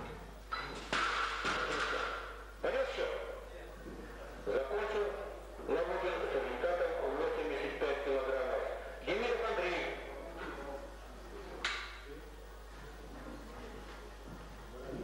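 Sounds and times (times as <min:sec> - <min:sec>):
men talking: 0:01.6 - 0:10.3.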